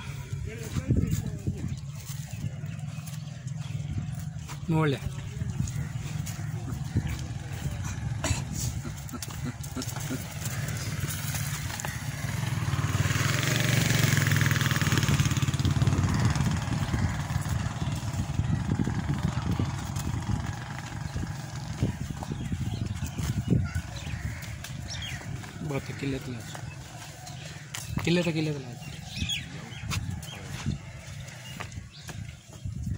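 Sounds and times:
steady low rumble: 0:00.0 - 0:12.9, 0:15.1 - 0:27.8
vehicle engine passing by: 0:05.2 - 0:23.3.

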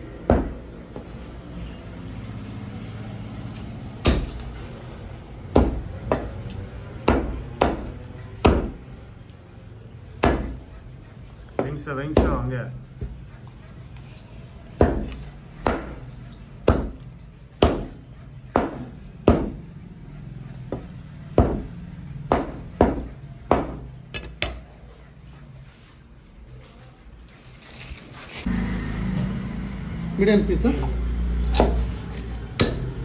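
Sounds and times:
cleaver chopping on wooden block: 0:05.5 - 0:06.4, 0:10.2 - 0:10.6, 0:11.6 - 0:12.4, 0:14.8 - 0:16.0, 0:16.6 - 0:17.0, 0:17.6 - 0:19.6, 0:22.3 - 0:24.6, 0:32.6 - 0:32.9.

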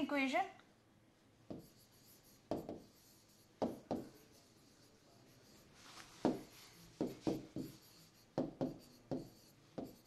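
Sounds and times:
pen strokes on whiteboard screen: 0:01.4 - 0:10.0.

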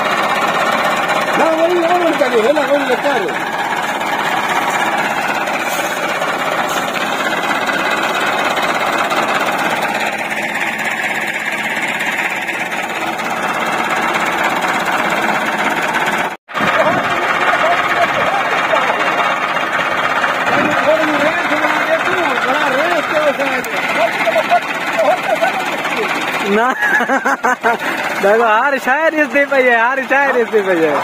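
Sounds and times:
tractor diesel engine clattering: 0:00.0 - 0:31.0.

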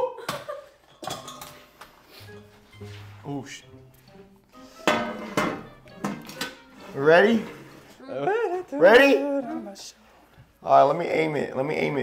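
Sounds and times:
background music: 0:01.2 - 0:12.0.

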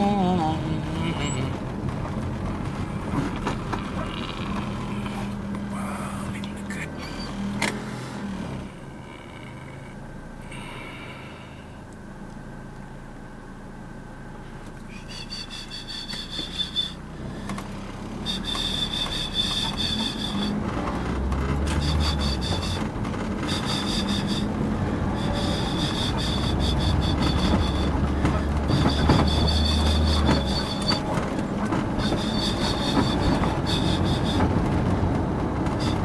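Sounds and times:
engine and road rumble: 0:00.0 - 0:36.0
high-pitched whine: 0:08.6 - 0:20.8, 0:21.6 - 0:34.6.

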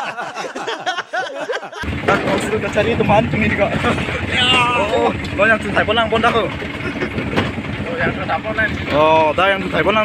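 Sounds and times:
road noise: 0:01.8 - 0:10.0
vehicle engine rumbling: 0:01.8 - 0:10.0.

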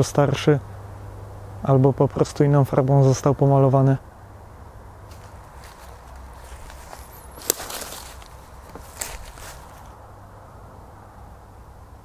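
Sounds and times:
footsteps in dry leaves: 0:05.1 - 0:10.0
sharp crack: 0:07.4 - 0:09.7.

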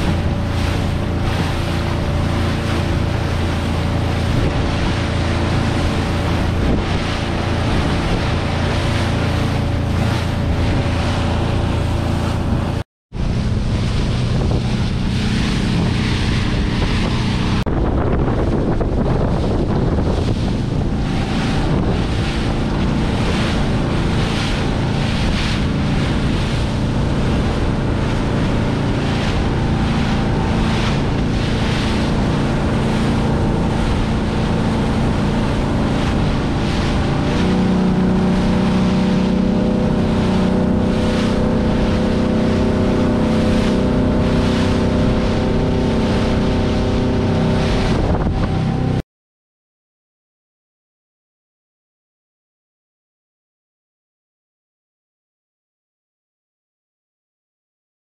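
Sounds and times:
motorboat engine running: 0:00.0 - 0:49.0
water splashing along hull: 0:00.0 - 0:49.0
wind buffeting microphone: 0:00.0 - 0:49.0.

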